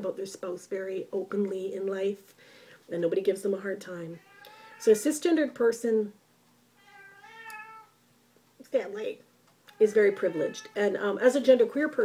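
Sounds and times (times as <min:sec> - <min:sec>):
cat meowing: 0:04.2 - 0:05.0, 0:06.8 - 0:08.0, 0:09.7 - 0:11.0.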